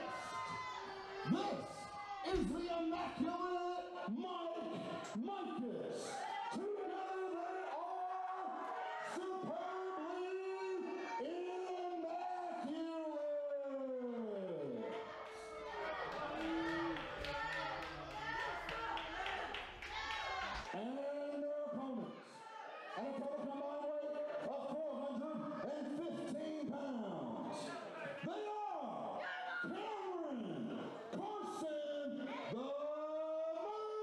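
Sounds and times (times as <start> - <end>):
crowd din: 0.0 - 31.6.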